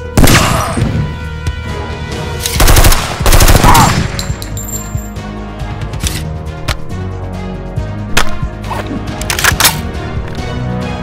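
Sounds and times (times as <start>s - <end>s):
background music: 0.0s - 11.0s
automatic gunfire bursts: 2.6s - 4.0s.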